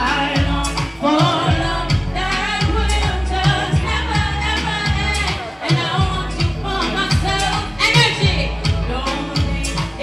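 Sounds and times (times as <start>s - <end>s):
backing music with bass and drums: 0.0s - 10.0s
woman singing into a microphone: 0.0s - 10.0s.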